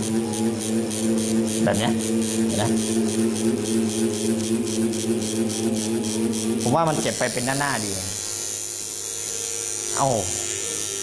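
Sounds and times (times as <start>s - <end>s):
tattoo machine buzzing: 0.0s - 11.0s.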